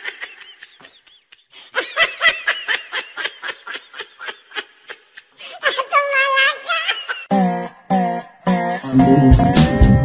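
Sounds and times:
person laughing: 0.0 - 7.3.

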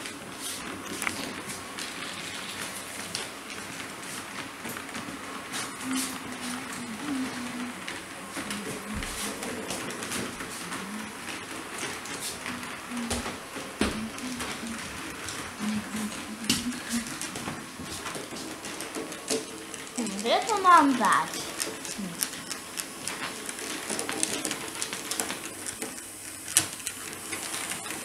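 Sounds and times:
wheels clicking over rail joints: 6.2 - 28.0.

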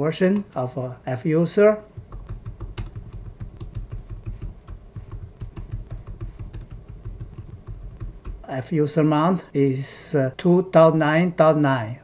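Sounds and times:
low hum: 2.0 - 8.5.

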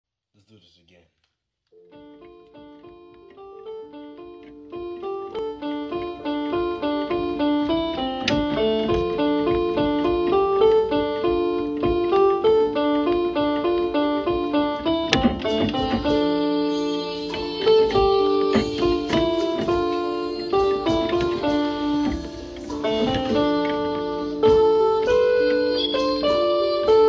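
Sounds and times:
plucked instrument melody: 1.8 - 27.0.

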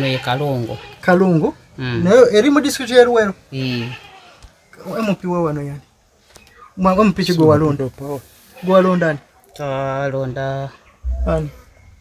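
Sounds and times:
man speaking: 6.8 - 8.2, 11.0 - 11.7.

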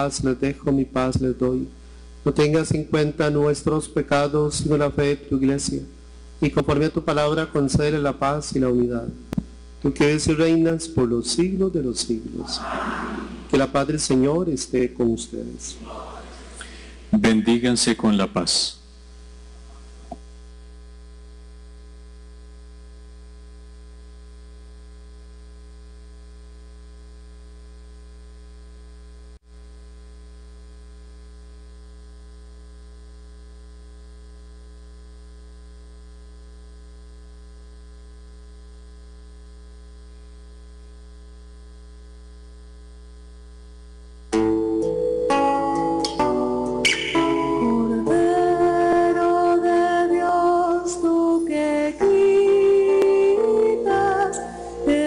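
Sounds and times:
electrical mains hum: 0.0 - 55.0
guitar music: 44.3 - 50.2, 52.0 - 55.0
person singing: 44.8 - 55.0.

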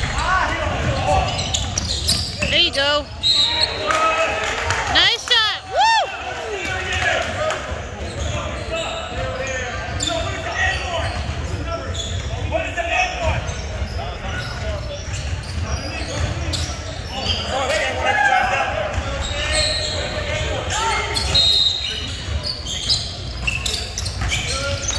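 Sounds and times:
players calling out: 0.0 - 11.4.

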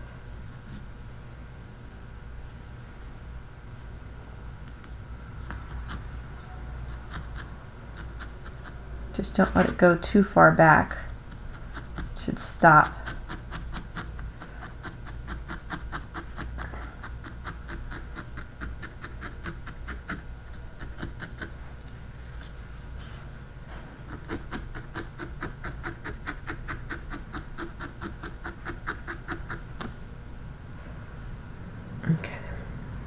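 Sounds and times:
felting needle stabbing wool: 7.0 - 10.0, 11.0 - 21.5, 24.0 - 30.0.

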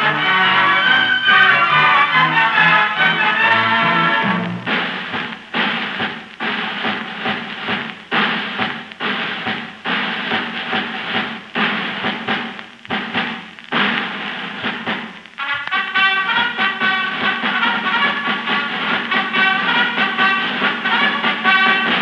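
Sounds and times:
orchestra playing melody: 0.0 - 4.7, 15.4 - 22.0
heavy drum strokes: 0.0 - 22.0.

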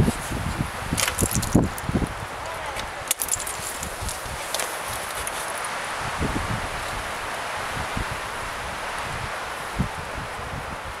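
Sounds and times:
outdoor wind noise: 0.0 - 11.0
wind buffets on microphone: 0.0 - 11.0.

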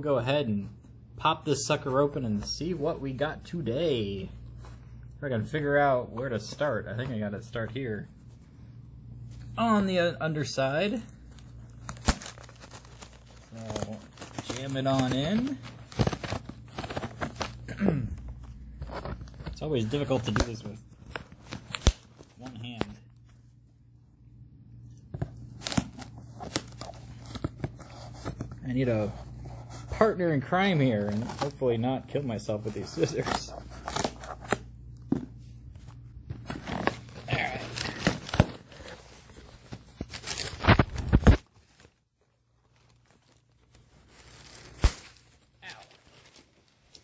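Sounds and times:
cardboard tearing and crinkling: 10.6 - 23.0, 25.3 - 30.0, 30.8 - 31.7, 32.4 - 34.7, 36.3 - 42.0, 42.7 - 47.0
packing tape clicks and crackles: 10.7 - 17.7, 18.3 - 23.0, 36.4 - 41.9.

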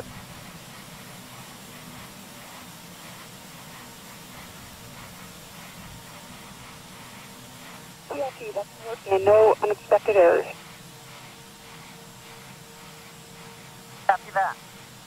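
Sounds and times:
faint low hum: 8.1 - 10.6.

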